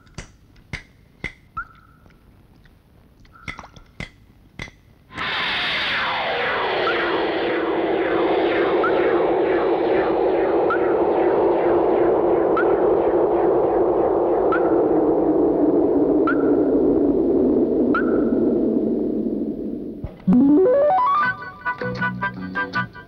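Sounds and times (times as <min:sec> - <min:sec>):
echoing noisy synth drone: 0:05.1 - 0:21.7
faint rising chirp: 0:05.6 - 0:21.0.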